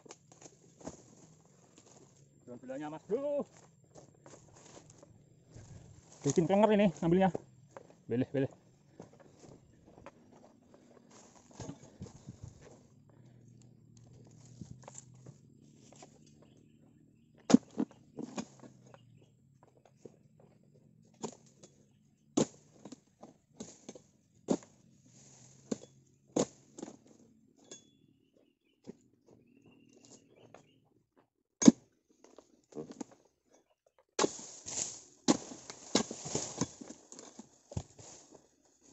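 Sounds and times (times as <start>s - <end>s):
chisel chopping palm: 17.5s - 18.5s, 22.4s - 23.0s, 26.4s - 26.9s, 31.6s - 31.8s, 34.2s - 34.6s.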